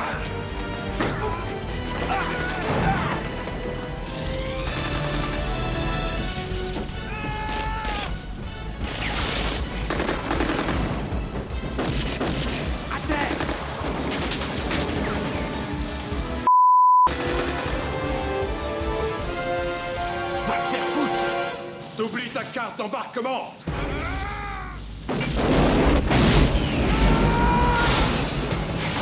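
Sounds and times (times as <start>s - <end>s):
dramatic orchestral music: 0.0s - 16.5s, 17.1s - 22.9s
fire effects: 7.6s - 16.5s, 23.7s - 29.0s
censor bleep: 16.5s - 17.1s
explosion bangs: 25.0s - 29.0s.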